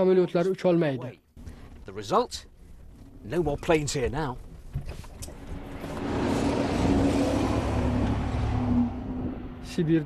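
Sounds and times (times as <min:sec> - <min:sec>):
car engine and road noise: 0:01.4 - 0:10.0.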